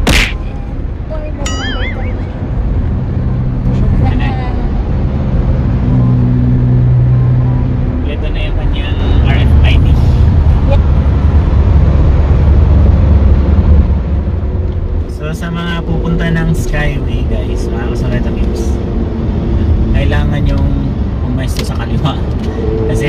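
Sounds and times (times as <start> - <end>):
engine and tyre rumble: 0.0 - 23.0.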